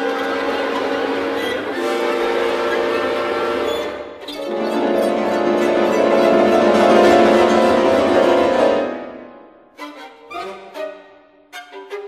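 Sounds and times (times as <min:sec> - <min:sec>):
chamber orchestra sustained chord: 0:00.0 - 0:09.5.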